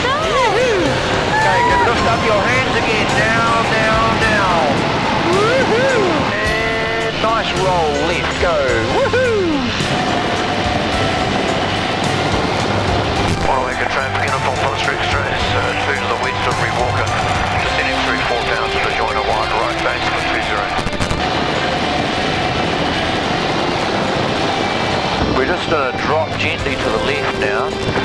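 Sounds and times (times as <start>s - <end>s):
biplane engine drone: 0.0s - 28.0s
wind rush: 0.0s - 28.0s.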